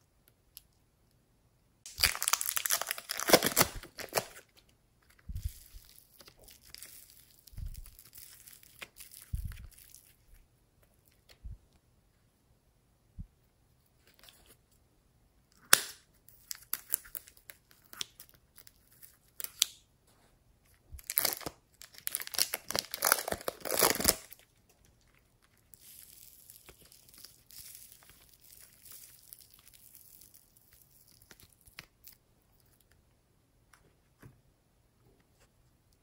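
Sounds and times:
clay rustling in hands: 0:00.0 - 0:36.0
scissors snipping plastic wrapper: 0:01.9 - 0:04.4, 0:21.1 - 0:24.4
plastic wrapper crinkling and tearing: 0:01.9 - 0:11.4, 0:15.7 - 0:19.8, 0:20.9 - 0:33.0.

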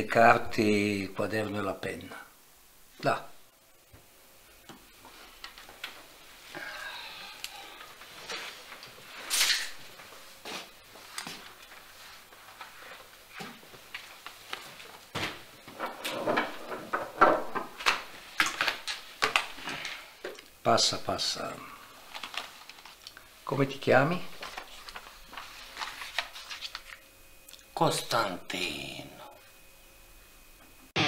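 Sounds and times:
playing cards clicking and rustling: 0:17.6 - 0:20.0
objects rustling on table: 0:22.0 - 0:23.2, 0:24.3 - 0:27.0.

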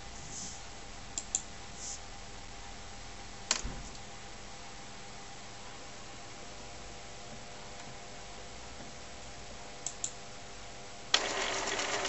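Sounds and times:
printer whirring and rattling: 0:11.2 - 0:12.0.

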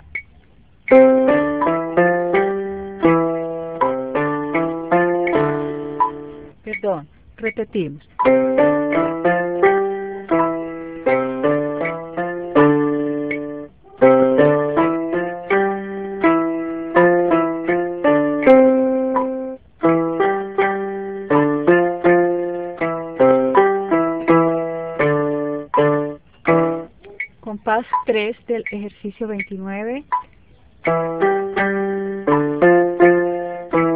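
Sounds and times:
electronic keyboard piano notes: 0:00.9 - 0:33.9.

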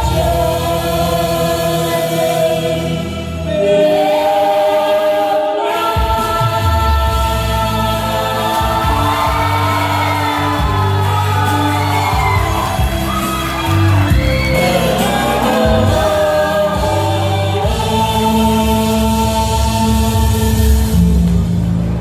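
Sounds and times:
young men singing into microphones: 0:00.0 - 0:21.2
amplified backing music: 0:00.0 - 0:22.0.

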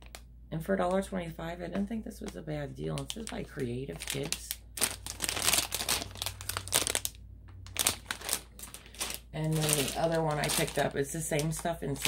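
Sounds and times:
plastic bag crinkling: 0:00.0 - 0:00.3, 0:02.1 - 0:12.0.

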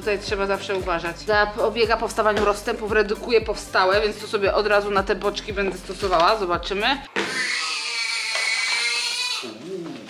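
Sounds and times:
newborn baby crying: 0:07.2 - 0:09.6.

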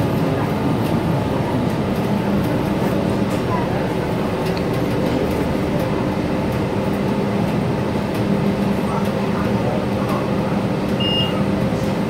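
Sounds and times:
bus engine drone: 0:00.0 - 0:12.0
road rumble: 0:00.0 - 0:12.0.

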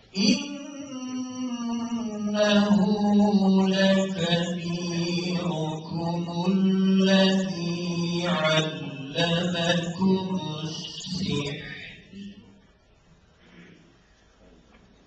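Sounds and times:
man chanting melodically: 0:00.1 - 0:12.6.

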